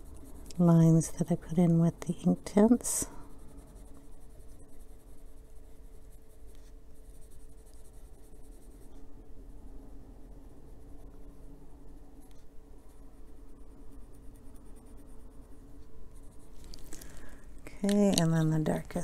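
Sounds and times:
pencil scratching on paper: 0.0 - 9.1, 12.2 - 19.0
faint steady hum: 0.0 - 19.0.

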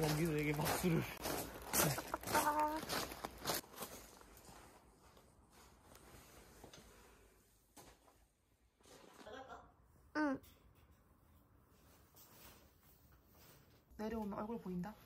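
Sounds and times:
person speaking: 0.0 - 3.2.

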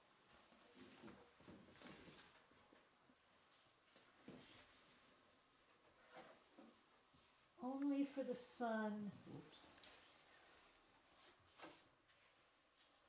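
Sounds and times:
faint clothing rustles: 0.0 - 13.0.

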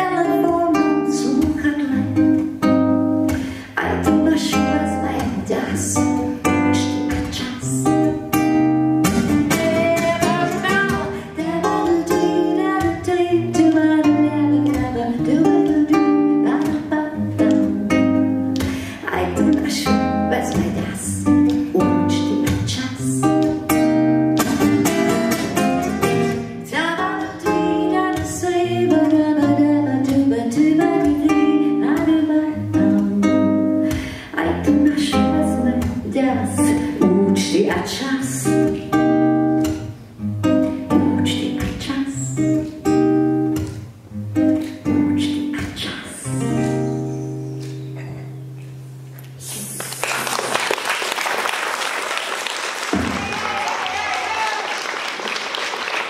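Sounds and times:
woman singing slow song: 0.0 - 2.5, 3.5 - 8.2, 9.4 - 23.6, 26.6 - 39.0, 40.9 - 42.7, 44.7 - 47.2
plucked acoustic guitar: 0.0 - 49.4.

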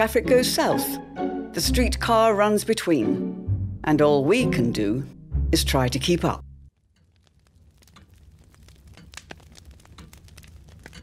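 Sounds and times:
faint crackles and clicks: 6.7 - 11.0.

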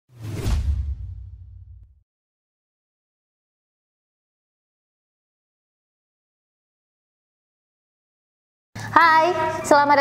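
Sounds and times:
whoosh: 0.1 - 2.0.

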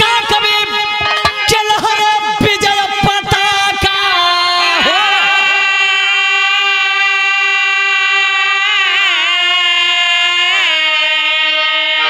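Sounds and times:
harmonium: 0.0 - 12.0
man singing a long note: 0.0 - 12.0.

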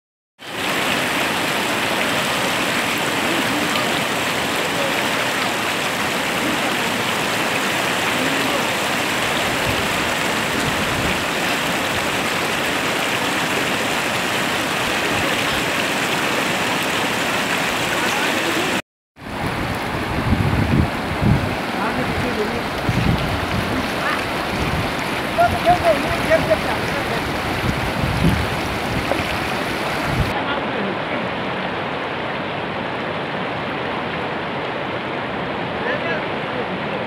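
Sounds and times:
stream rushing over rocks: 0.4 - 37.0.

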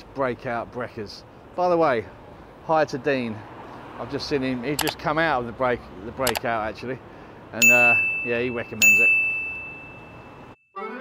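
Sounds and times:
high bell-like ding: 7.6 - 10.6.

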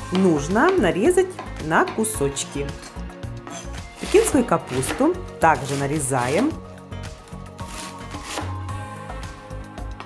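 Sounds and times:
background music: 0.0 - 10.0
knife chopping cabbage on board: 3.5 - 6.6, 7.6 - 8.6.

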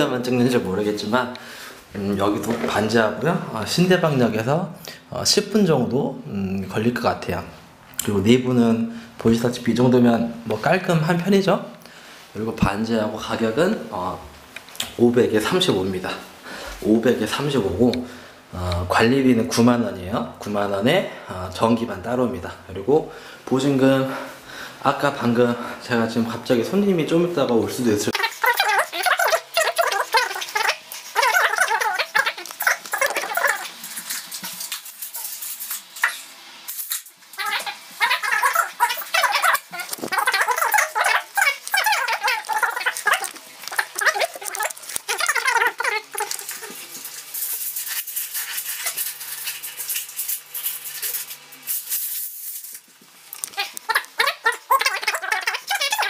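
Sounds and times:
tape measure rattling and scraping: 32.6 - 37.2, 46.1 - 53.6.

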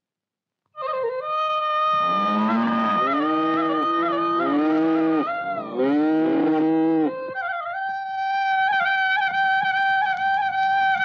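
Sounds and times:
bamboo flute note: 0.8 - 11.0
soft flute music: 0.8 - 11.0
cattle mooing: 2.0 - 7.1.

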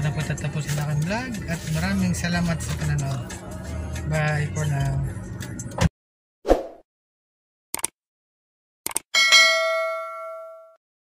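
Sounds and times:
bright bell ding: 9.2 - 10.8.

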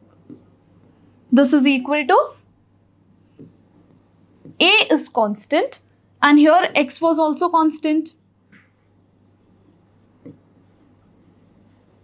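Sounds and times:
stylus scratching on touchscreen: 8.1 - 12.0.

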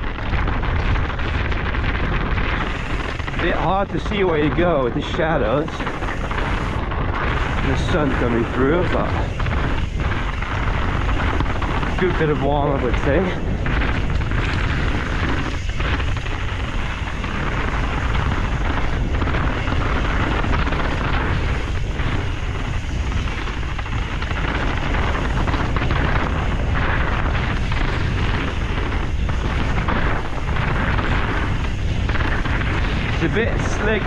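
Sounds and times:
bike knocking over bumps: 0.0 - 33.7
tyres rumbling on dirt trail: 0.0 - 34.0
wind buffeting microphone: 0.0 - 34.0.

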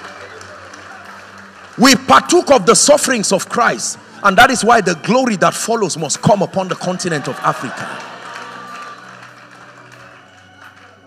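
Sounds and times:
speech echoing in a hall: 0.0 - 9.0
soft music of low chords: 0.0 - 11.0.

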